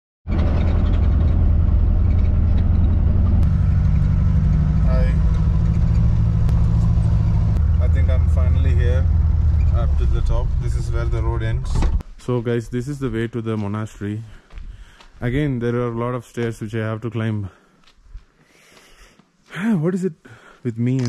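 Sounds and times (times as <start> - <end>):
car engine and tyre drone: 0.3 - 12.0
person speaking: 9.8 - 14.5, 15.2 - 17.6, 19.5 - 21.0.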